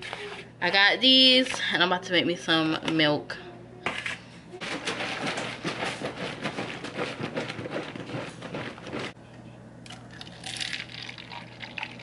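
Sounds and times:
milk pouring into cup: 9.9 - 12.0.

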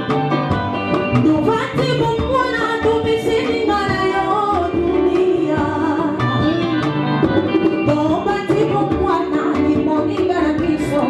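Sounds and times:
live band with drums and guitars: 0.0 - 11.0
woman singing into microphone: 0.0 - 11.0.

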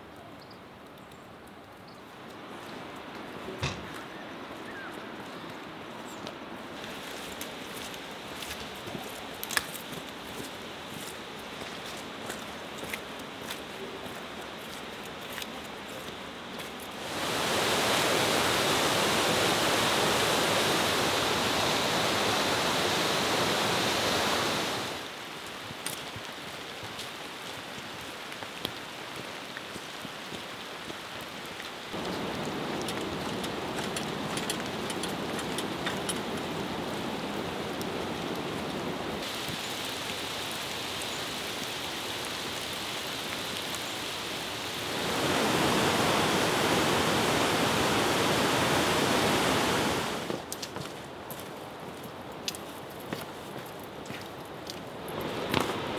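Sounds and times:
running water rushing: 2.1 - 55.9.

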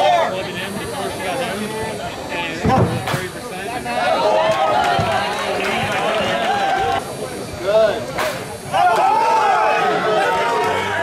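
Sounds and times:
people chattering: 0.0 - 11.0
bat hitting ball: 8.2 - 8.6.

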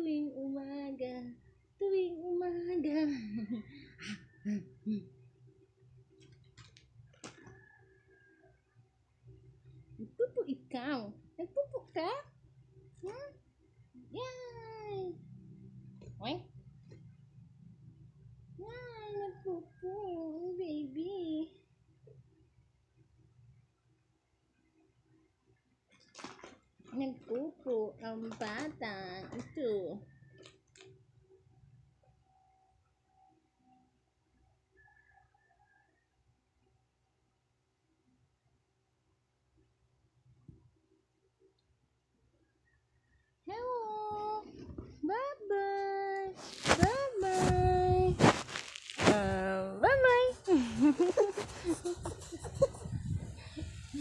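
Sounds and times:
faint low hum: 0.0 - 54.0.

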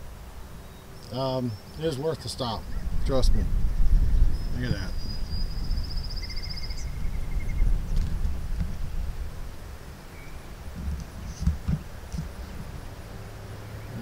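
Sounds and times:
wind buffeting microphone: 2.5 - 9.8, 10.6 - 12.8.

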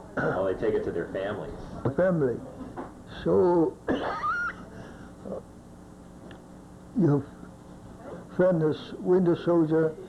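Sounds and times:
elderly man coughing: 3.9 - 4.4.

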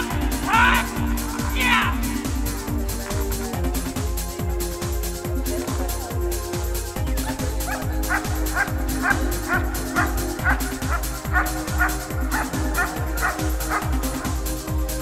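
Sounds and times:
electronic dance music: 0.0 - 15.0
dog barking: 7.7 - 14.3.

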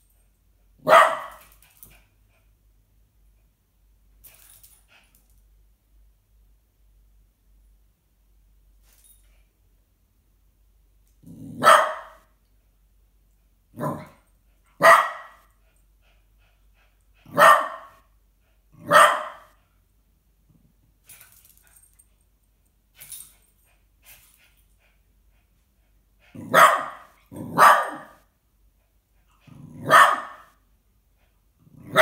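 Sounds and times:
small dog barking: 0.8 - 1.4, 11.5 - 12.3, 13.8 - 14.2, 14.8 - 15.5, 17.3 - 18.0, 18.8 - 19.6, 26.4 - 28.2, 29.7 - 30.6
dog yapping: 14.8 - 15.4, 18.9 - 19.5, 26.5 - 28.2, 29.8 - 30.5.

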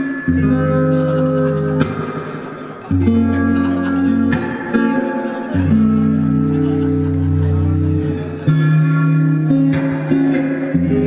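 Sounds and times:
bass guitar chords: 0.0 - 11.0
electric guitar chords: 0.0 - 11.0
live rock band playing: 0.0 - 11.0.

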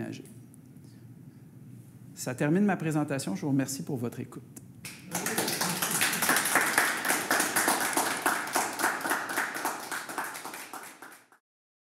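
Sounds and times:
audience applauding: 4.9 - 11.4.

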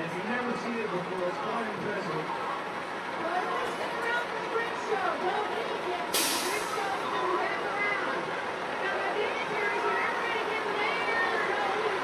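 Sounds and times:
crowd chatter: 0.0 - 12.0
air brakes hissing: 6.1 - 6.9.

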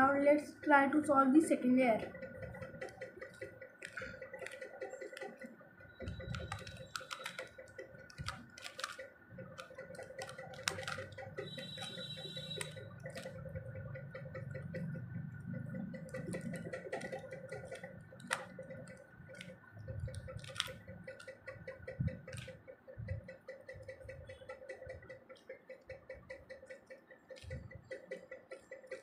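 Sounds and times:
faint steady hum: 0.0 - 29.0
plastic puzzle pieces clicking: 2.1 - 15.0, 15.6 - 22.6.

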